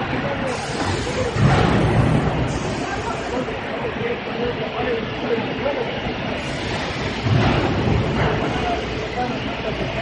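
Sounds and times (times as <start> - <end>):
production line machinery running: 0.0 - 10.0.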